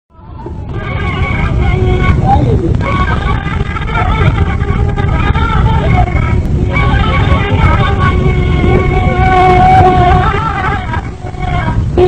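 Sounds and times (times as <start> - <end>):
heavy low rumble: 0.1 - 12.0
reed flute music: 0.1 - 12.0.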